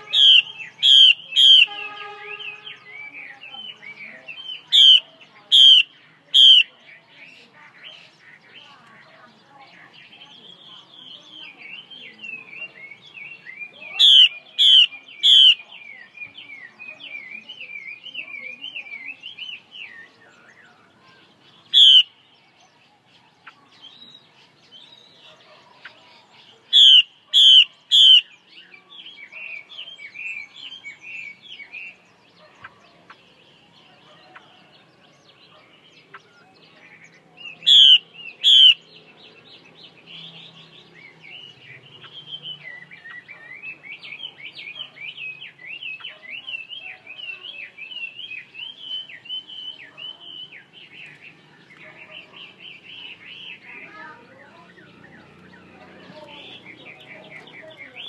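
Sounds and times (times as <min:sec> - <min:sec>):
bird chattering twitter: 0:00.0 - 0:58.0
loud sharp bird calls: 0:00.0 - 0:58.0.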